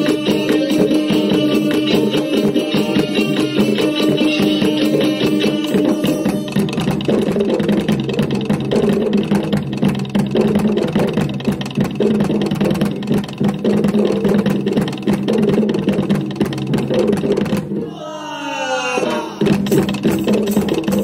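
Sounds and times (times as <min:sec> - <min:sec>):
rapid dense drumming: 0:00.0 - 0:18.0, 0:19.0 - 0:21.0.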